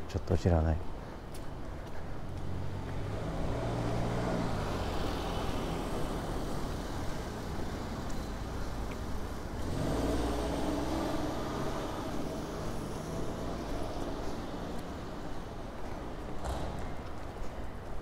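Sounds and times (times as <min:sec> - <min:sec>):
vehicle engine hum passing: 0:02.2 - 0:18.0.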